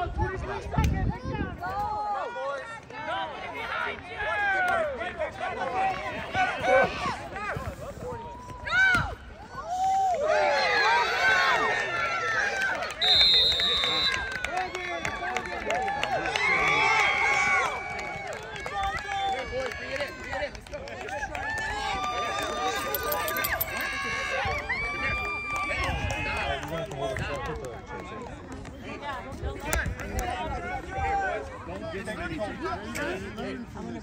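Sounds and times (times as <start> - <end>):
people shouting and cheering: 0.0 - 33.2
referee whistle: 13.0 - 14.4.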